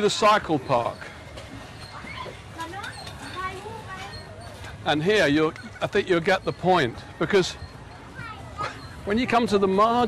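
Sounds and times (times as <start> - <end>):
background chatter of voices: 0.0 - 10.0
low hum of outdoor bustle: 0.0 - 10.0.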